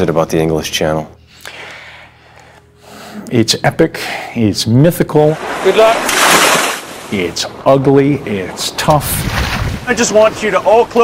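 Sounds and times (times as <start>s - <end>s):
man breathing: 1.2s - 3.3s.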